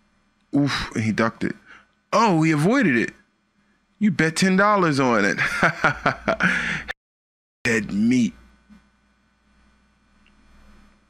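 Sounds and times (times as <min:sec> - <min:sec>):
faint low hum: 0:00.0 - 0:06.9, 0:07.7 - 0:11.0.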